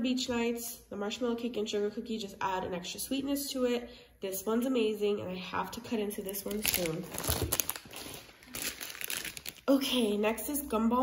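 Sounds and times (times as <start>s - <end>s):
plastic bag crinkling: 6.2s - 9.9s.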